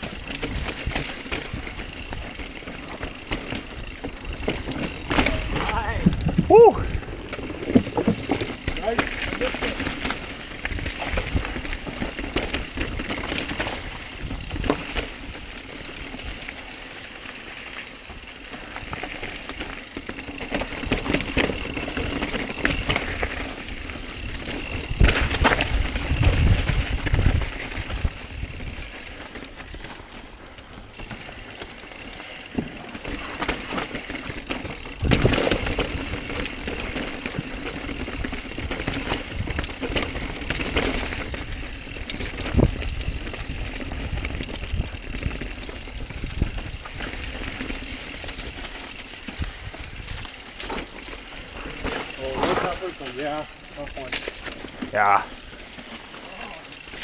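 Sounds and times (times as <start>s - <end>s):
bike tyre and drivetrain noise: 0.0s - 57.0s
wind on microphone: 5.6s - 7.2s, 24.7s - 28.8s.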